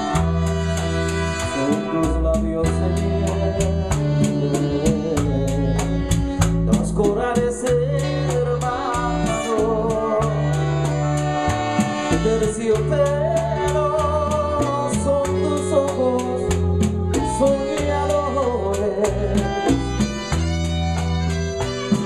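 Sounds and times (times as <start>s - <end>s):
high percussion tick: 0.0s - 22.0s
latin band playing: 0.0s - 22.0s.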